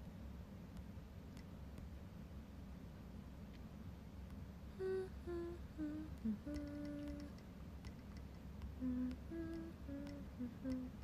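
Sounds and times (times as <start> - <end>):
woman humming: 4.7 - 7.4, 8.8 - 11.0.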